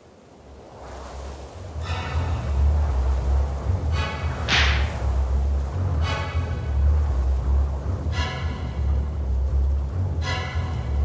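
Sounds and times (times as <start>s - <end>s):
low rumbling drone: 1.5s - 11.0s
sharp whoosh: 1.7s - 9.0s.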